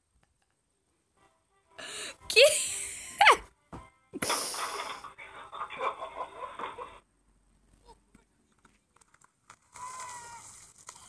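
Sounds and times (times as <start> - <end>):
high-pitched cry: 2.3 - 3.4
ice cracking: 9.0 - 11.0.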